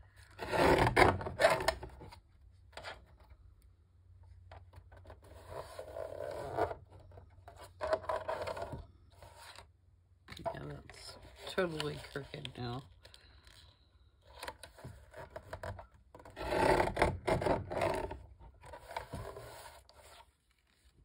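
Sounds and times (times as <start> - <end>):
paper trimmer scraping through paper: 0.4 - 1.9, 16.3 - 20.0.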